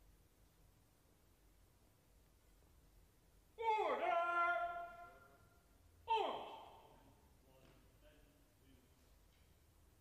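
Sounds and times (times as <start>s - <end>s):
man shouting: 3.6s - 7.0s.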